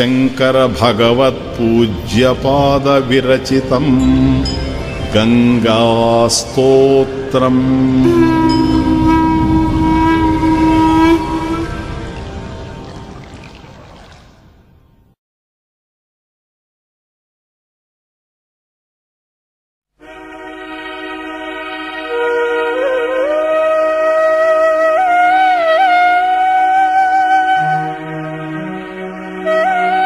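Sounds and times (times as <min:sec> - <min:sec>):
long held sung note: 0:03.8 - 0:13.0
harmonium drone: 0:07.7 - 0:12.6, 0:20.0 - 0:23.4
harmonium melody note: 0:08.0 - 0:12.8, 0:20.0 - 0:30.0.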